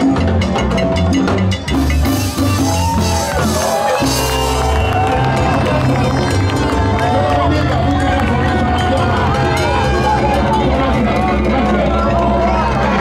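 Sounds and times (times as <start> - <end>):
salsa band playing: 0.0 - 13.0
crowd cheering: 2.0 - 13.0.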